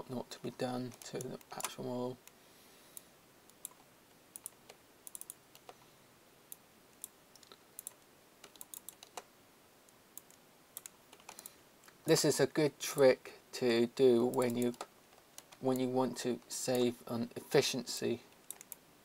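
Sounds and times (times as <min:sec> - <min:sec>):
keyboard and mouse clicking: 0:04.4 - 0:05.8, 0:07.0 - 0:09.3, 0:10.2 - 0:12.0, 0:14.3 - 0:15.9, 0:18.3 - 0:18.8.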